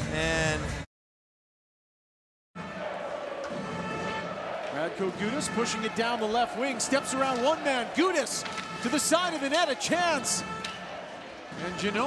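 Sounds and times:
crowd noise: 2.6s - 12.0s
commentator speaking: 4.8s - 10.4s.

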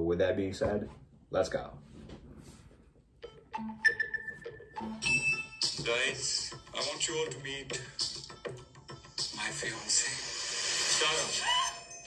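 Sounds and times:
film soundtrack with chiming tones: 3.2s - 6.7s, 11.4s - 12.0s.

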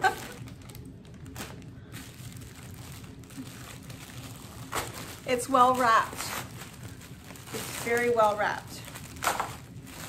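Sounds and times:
gift wrapping paper crinkling: 0.0s - 10.0s.

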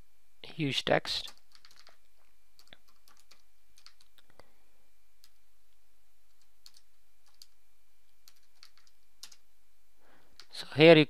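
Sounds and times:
keyboard keystrokes: 1.3s - 2.0s, 8.3s - 9.4s.

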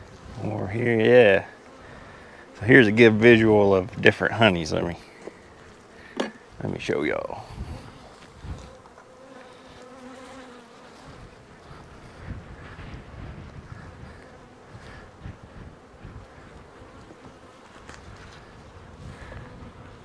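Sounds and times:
bees buzzing: 0.0s - 20.0s
light knocks of hive frame: 5.1s - 6.5s, 15.3s - 18.8s.

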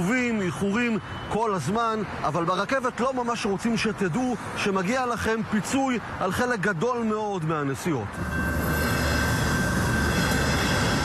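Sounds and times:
thin high tone: 8.2s - 11.0s
train wheels rumbling on rails: 8.2s - 11.0s.

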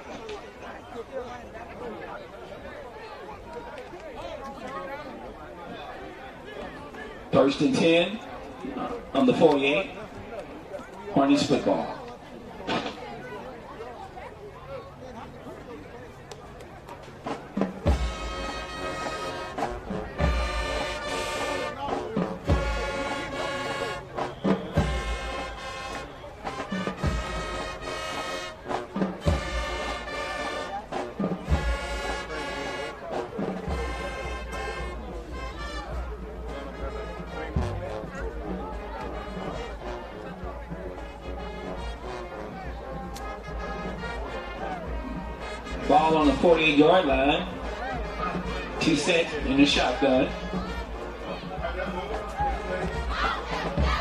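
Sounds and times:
marching band brass and drums: 0.0s - 54.0s.

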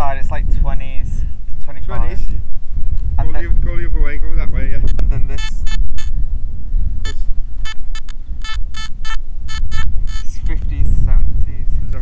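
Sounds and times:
wind rumbling on microphone: 0.0s - 12.0s
metal detector beeps: 4.8s - 6.1s, 7.0s - 10.4s.

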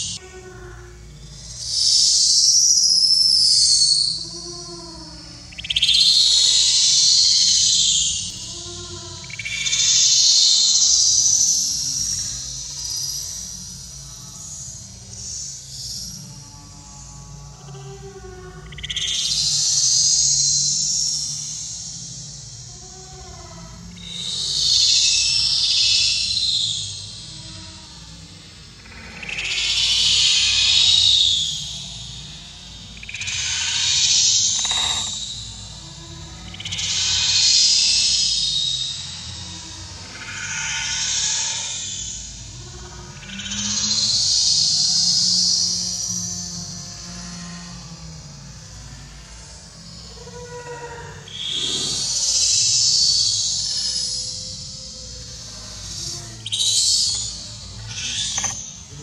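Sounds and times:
insects buzzing: 0.0s - 59.0s.

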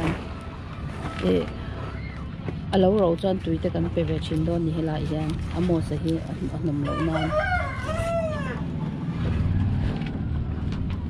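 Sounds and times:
low steady rumble: 0.0s - 11.0s
rooster crowing: 6.8s - 8.7s.

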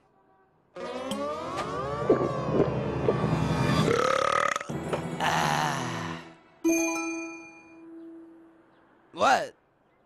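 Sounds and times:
long drawn-out burp: 3.9s - 6.3s.

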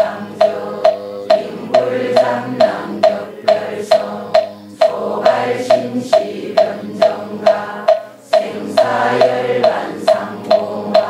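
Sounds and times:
congregation chanting in unison: 0.0s - 11.0s
wooden fish knocks: 0.0s - 11.0s.

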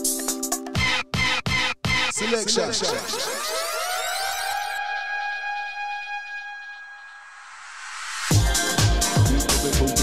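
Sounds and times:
held synth tone: 1.2s - 7.8s
upward pitch sweep: 2.1s - 8.3s.

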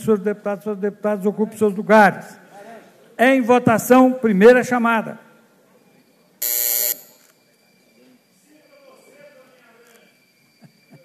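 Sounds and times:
electric buzzer: 6.4s - 7.3s.

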